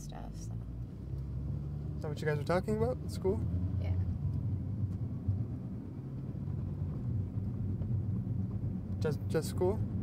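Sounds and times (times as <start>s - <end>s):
car interior engine and road rumble: 0.0s - 10.0s.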